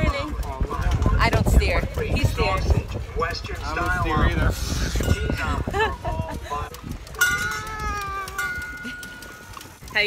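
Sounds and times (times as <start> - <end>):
toddler squealing: 7.2 - 8.8.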